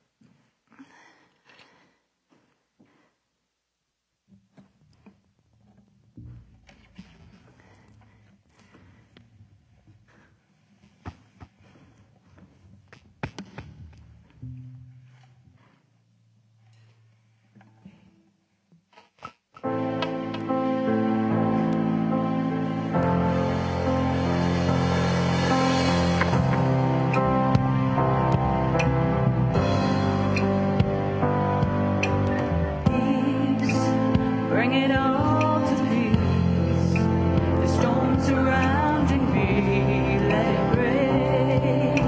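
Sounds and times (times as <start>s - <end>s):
band playing loudly: 21.4s - 33.1s.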